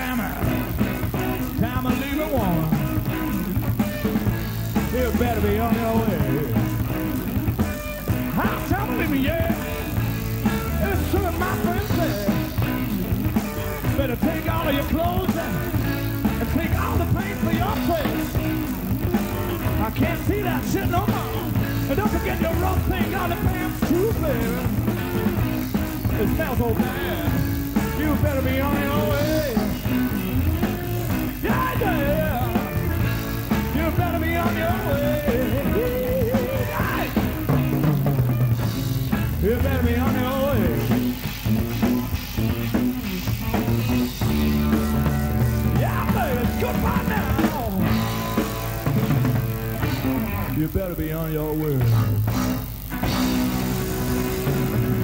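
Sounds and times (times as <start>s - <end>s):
blues-rock band playing: 0.0s - 55.0s
electric guitar bending notes: 0.0s - 55.0s.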